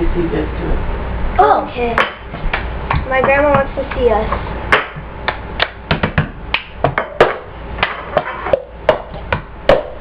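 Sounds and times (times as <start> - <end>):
hand claps: 4.7 - 8.0
plastic cups knocking on countertop: 5.6 - 10.0.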